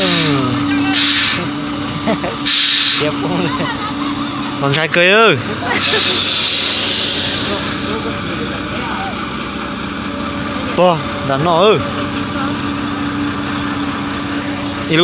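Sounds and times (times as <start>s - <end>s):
hiss: 0.0s - 1.5s, 2.4s - 3.1s, 5.8s - 8.0s
truck engine running: 0.0s - 15.0s.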